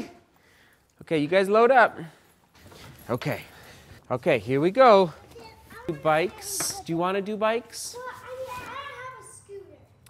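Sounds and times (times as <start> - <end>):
young child talking: 5.2 - 6.8, 7.9 - 10.0.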